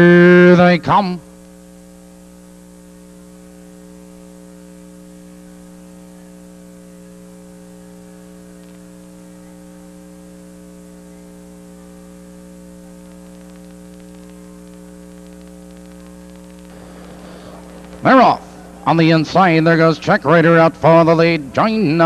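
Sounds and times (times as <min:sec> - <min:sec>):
electrical mains hum: 0:00.0 - 0:22.0
faint static: 0:00.0 - 0:22.0.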